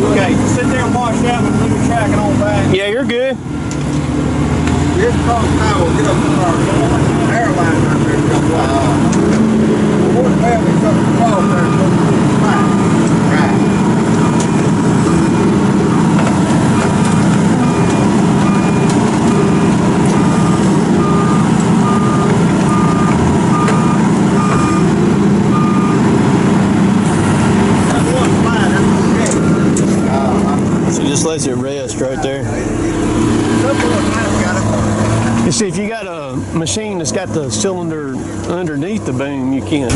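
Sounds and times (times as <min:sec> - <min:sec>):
diesel engine running: 0:00.0 - 0:39.9
backup alarm beeping: 0:00.2 - 0:03.9, 0:10.7 - 0:26.2, 0:28.9 - 0:31.2.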